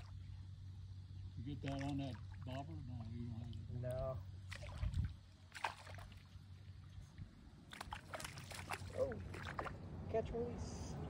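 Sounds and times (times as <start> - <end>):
fish splashing at water surface: 4.4 - 6.4, 7.6 - 9.8.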